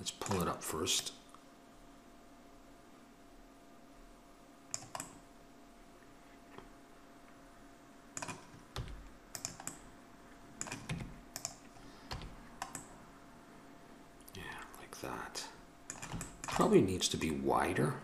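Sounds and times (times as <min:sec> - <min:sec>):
mouse buttons clicking: 0:04.7 - 0:05.2, 0:10.6 - 0:12.9
keyboard keys clicking: 0:08.2 - 0:09.8, 0:10.6 - 0:12.9.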